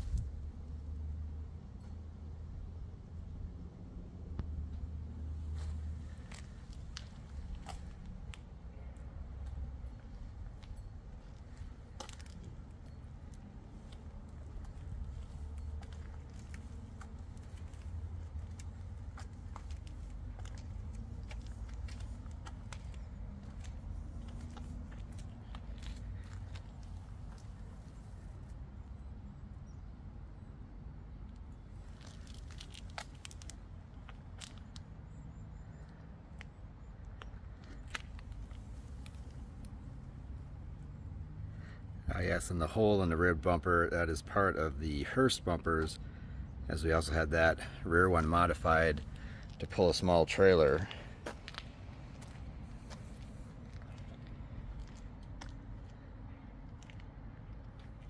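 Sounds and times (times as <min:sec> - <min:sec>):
steady low rumble: 0:00.0 - 0:01.6, 0:02.4 - 0:29.5, 0:36.8 - 0:58.0
footsteps: 0:13.8 - 0:28.3, 0:50.8 - 0:55.6.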